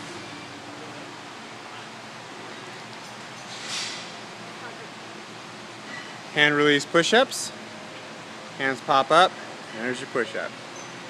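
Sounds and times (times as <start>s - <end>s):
steady room hiss: 0.0s - 11.0s.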